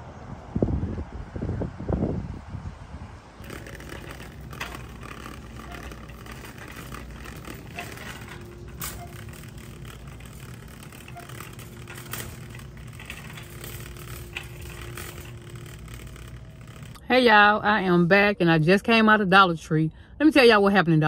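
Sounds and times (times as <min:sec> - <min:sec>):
cart clicks and rattles: 0:03.4 - 0:17.0
shopping cart wheels rumbling: 0:03.4 - 0:17.0.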